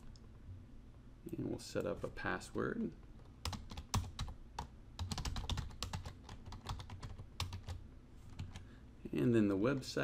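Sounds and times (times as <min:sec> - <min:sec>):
computer keyboard keys clicking: 0:03.2 - 0:08.6.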